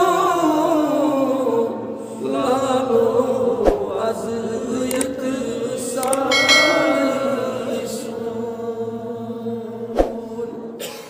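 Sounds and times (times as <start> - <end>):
bell-like chime: 6.3 - 8.3.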